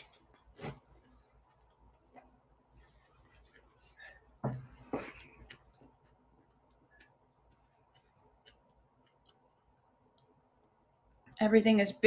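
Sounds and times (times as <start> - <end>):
soft knock: 4.4 - 4.7.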